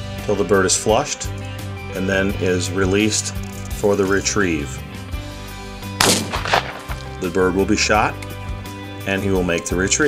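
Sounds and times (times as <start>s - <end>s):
background music: 0.0s - 10.0s
shotgun shot: 6.0s - 7.3s
weaker crack: 6.0s - 7.5s.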